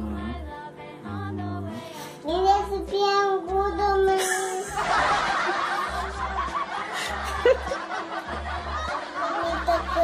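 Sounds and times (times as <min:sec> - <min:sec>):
laughter: 0:04.2 - 0:10.0.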